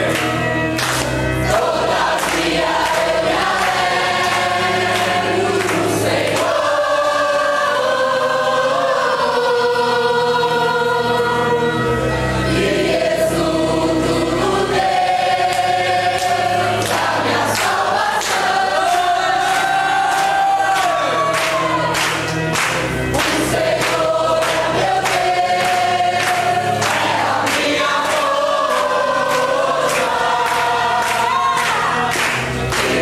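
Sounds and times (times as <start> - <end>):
congregation singing: 0.0 - 33.0.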